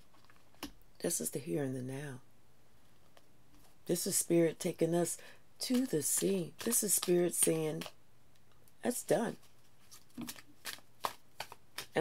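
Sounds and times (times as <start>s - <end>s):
cards being shuffled: 5.7s - 8.0s, 9.3s - 12.0s.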